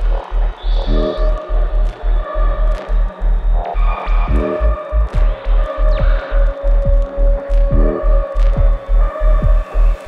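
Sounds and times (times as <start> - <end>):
throbbing sub-bass: 0.0 - 10.0.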